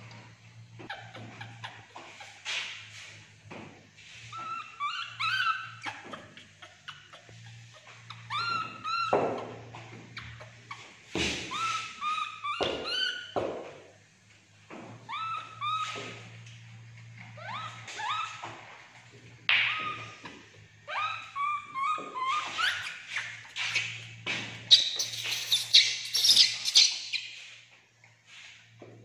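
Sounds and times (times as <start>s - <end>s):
baby monkey squeaky chirps: 4.3s - 9.2s, 11.5s - 13.4s, 15.1s - 16.0s, 17.4s - 18.5s, 19.6s - 20.2s, 20.9s - 23.9s, 24.7s - 27.4s.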